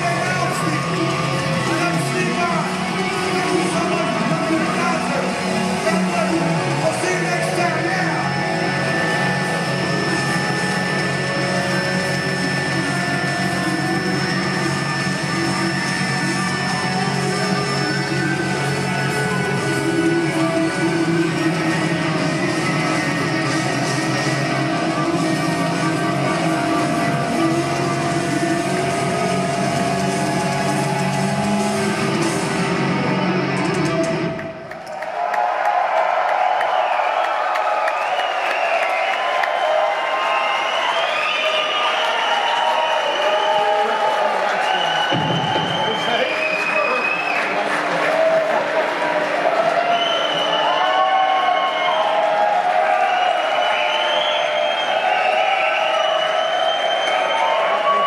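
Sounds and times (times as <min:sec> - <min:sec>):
crowd whistling: 0:00.0 - 0:32.8, 0:33.6 - 0:58.0
crowd cheering: 0:00.0 - 0:58.0
loud hard rock band: 0:00.1 - 0:34.4.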